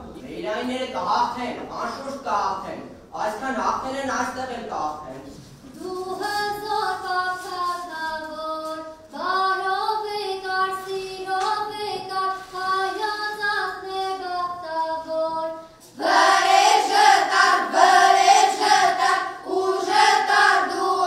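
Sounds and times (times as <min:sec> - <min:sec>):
children singing together: 0:05.7 - 0:21.0.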